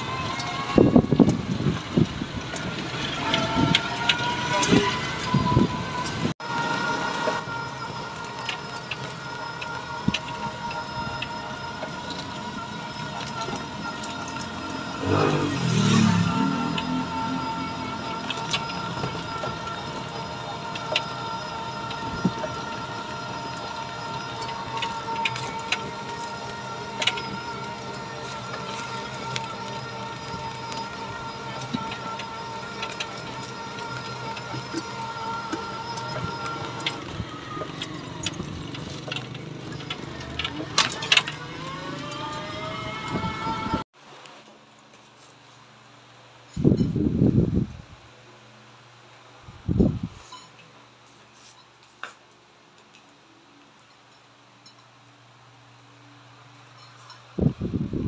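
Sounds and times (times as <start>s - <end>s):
electric motor whine: 0.0s - 43.9s
small clicks and rattles: 18.0s - 42.4s.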